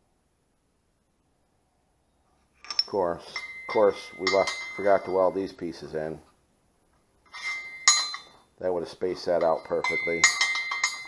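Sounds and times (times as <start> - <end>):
sharp metallic clink: 2.6 - 5.4, 7.3 - 8.4, 9.4 - 11.0
steel scraping: 7.3 - 8.4.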